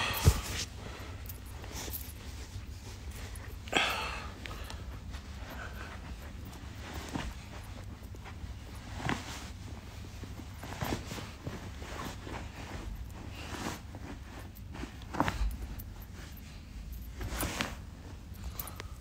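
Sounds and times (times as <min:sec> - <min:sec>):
low steady hum: 0:00.0 - 0:19.0.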